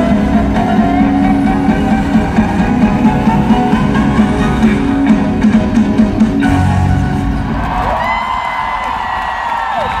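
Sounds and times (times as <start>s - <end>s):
live pop band playing: 0.0s - 8.5s
crowd cheering and whooping: 7.1s - 10.0s.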